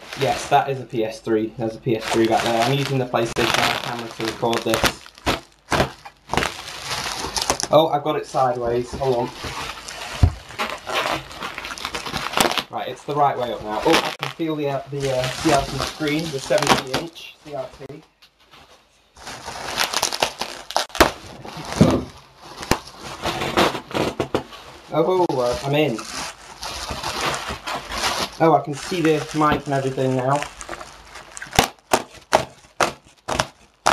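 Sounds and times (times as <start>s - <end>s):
bubble wrap crinkling: 0.0s - 33.9s.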